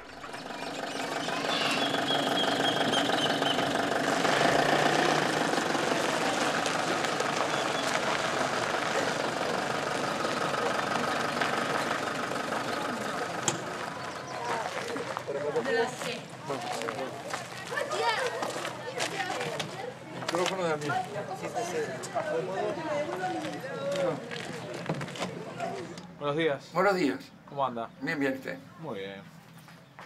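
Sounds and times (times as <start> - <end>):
engine running steadily: 0.0 - 15.6.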